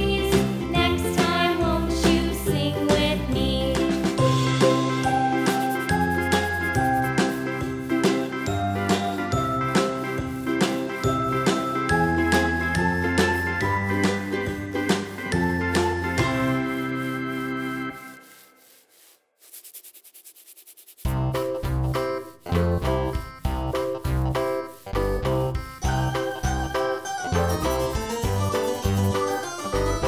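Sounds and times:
children's music with chimes: 8.4s - 16.6s, 25.8s - 30.0s
rapid rattling hiss: 16.5s - 21.2s.

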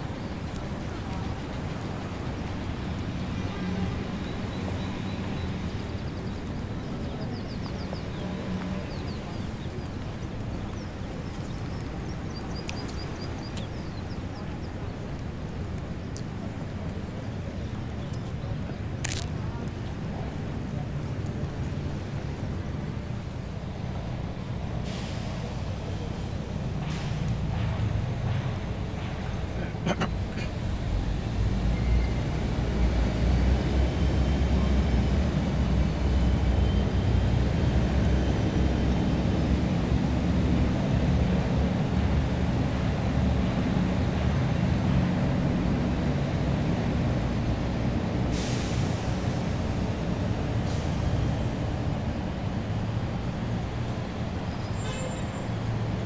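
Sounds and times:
road traffic rumble: 0.0s - 56.0s
short hiss: 48.3s - 49.4s.

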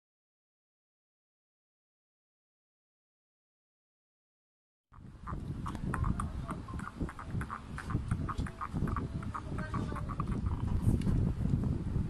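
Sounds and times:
phone microphone handling rumble: 5.0s - 12.0s.

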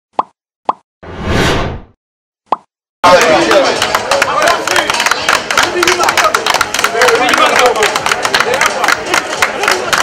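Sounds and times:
whoosh: 1.0s - 2.0s
crowd clapping: 3.0s - 10.0s
crowd talking: 3.0s - 10.0s.

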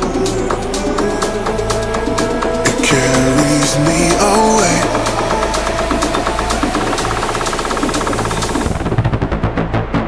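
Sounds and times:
pulsing dance beat: 0.0s - 9.3s
deep house music build: 0.0s - 10.0s.

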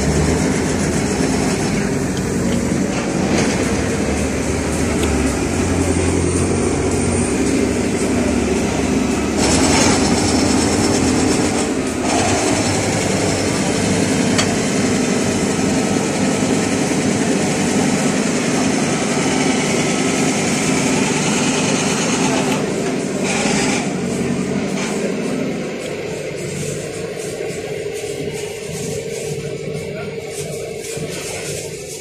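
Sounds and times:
machinery running drone: 0.0s - 32.0s.

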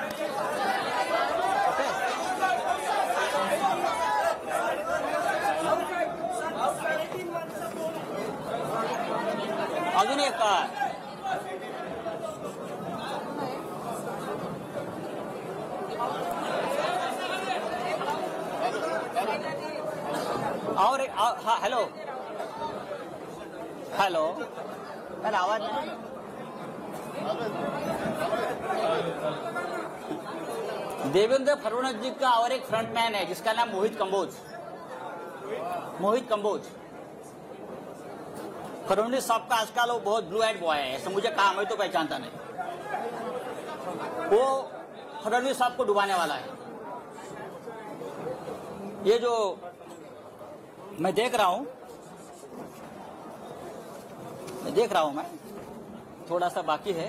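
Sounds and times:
crowd chatter: 0.0s - 57.0s
murmur of overlapping voices: 0.0s - 57.0s.

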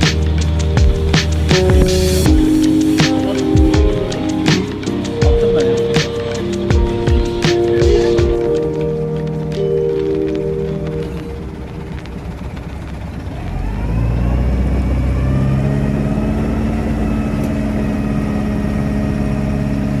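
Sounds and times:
background music: 0.0s - 20.0s
boat engine running: 0.0s - 20.0s.

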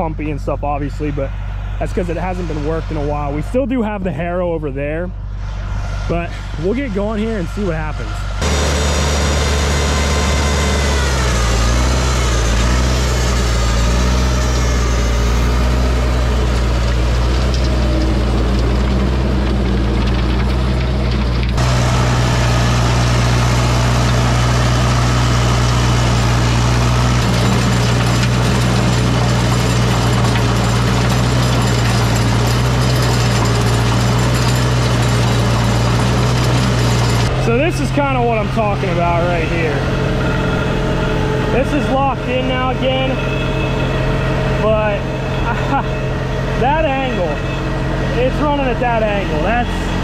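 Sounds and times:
tractor engine under load: 0.0s - 50.0s.

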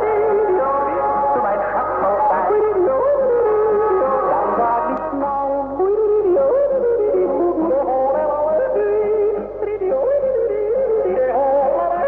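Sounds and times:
folk music over radio: 0.0s - 12.0s.

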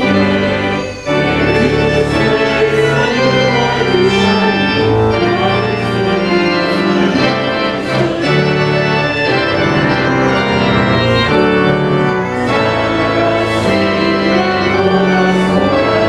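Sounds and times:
church organ playing a hymn: 0.0s - 16.0s.

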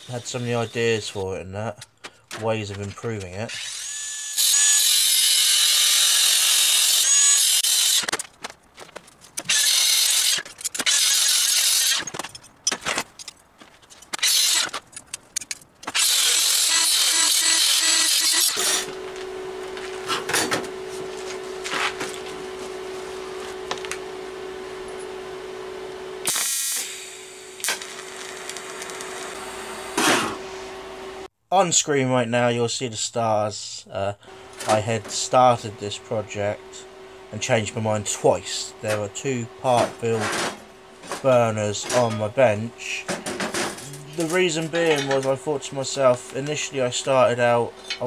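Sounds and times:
angle grinder cutting steel: 3.5s - 8.2s, 9.4s - 12.1s, 14.2s - 14.8s, 15.9s - 19.2s, 26.2s - 30.5s.

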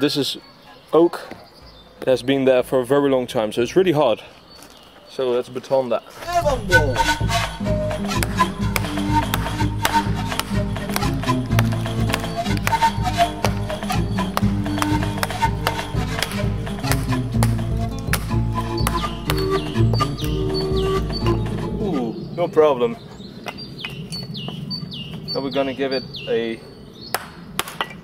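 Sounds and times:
background music sustained notes: 6.2s - 23.8s.

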